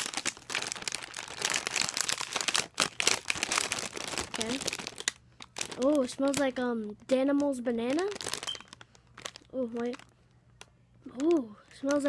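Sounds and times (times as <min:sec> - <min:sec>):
person speaking: 0:04.2 - 0:04.8, 0:05.7 - 0:08.3, 0:09.5 - 0:10.1, 0:11.0 - 0:12.0.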